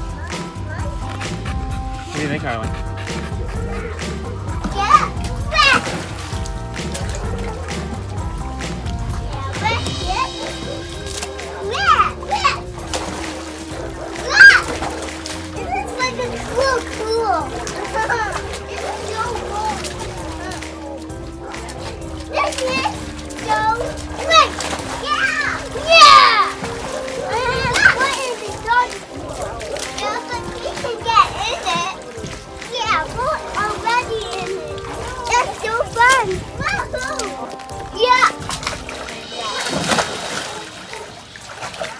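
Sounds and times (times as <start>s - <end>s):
background music: 0.0s - 41.9s
water splashing: 0.0s - 41.9s
children shrieking excitedly: 13.6s - 20.6s, 22.3s - 32.1s.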